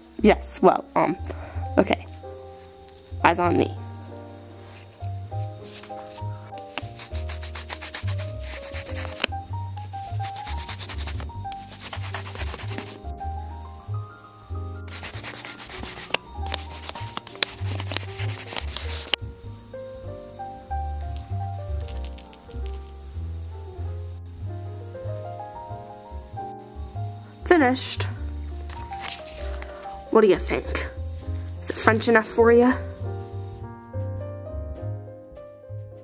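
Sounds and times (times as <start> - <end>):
background music: 0.0 - 36.0
pencil scribbling on paper: 5.6 - 9.3, 10.0 - 13.1, 14.9 - 19.2.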